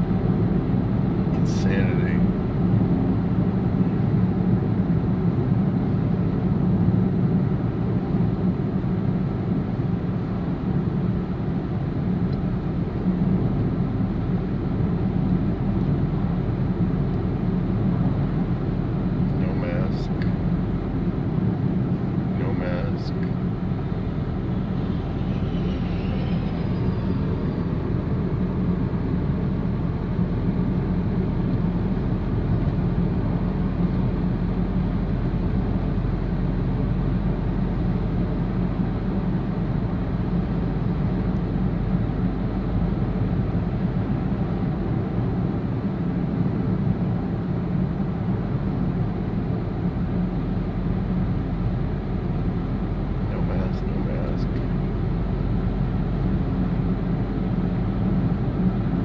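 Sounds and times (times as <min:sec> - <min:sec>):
car interior road noise: 0:00.0 - 0:59.0.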